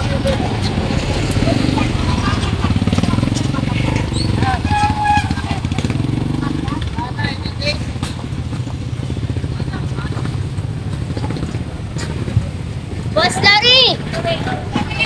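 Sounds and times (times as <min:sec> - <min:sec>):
faint street chatter: 0:00.0 - 0:15.0
motorcycle engines at low speed: 0:00.0 - 0:15.0.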